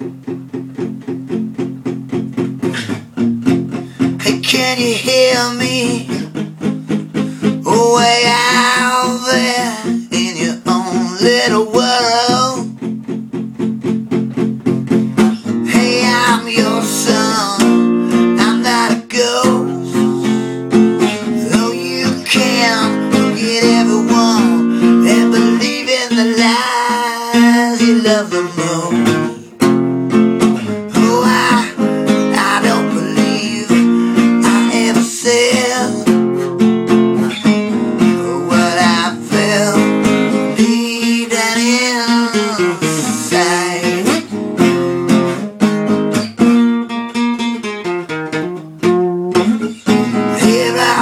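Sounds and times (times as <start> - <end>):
acoustic guitar strumming: 0.0 - 51.0
bending melody line: 15.5 - 26.2.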